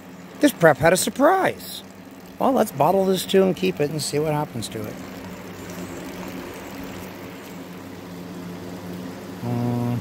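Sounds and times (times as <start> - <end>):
steady low hum: 0.0 - 10.0
water trickling onto ground: 0.4 - 8.0.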